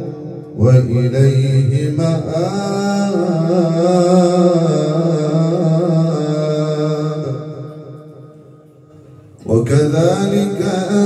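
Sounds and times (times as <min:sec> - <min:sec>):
man reciting melodically: 0:00.0 - 0:08.2, 0:09.1 - 0:11.0.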